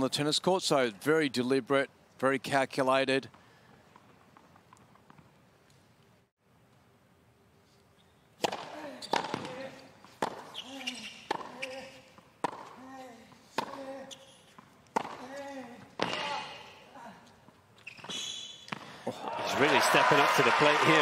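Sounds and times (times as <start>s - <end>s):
racket hitting tennis ball: 8.4s - 12.8s, 13.5s - 16.6s.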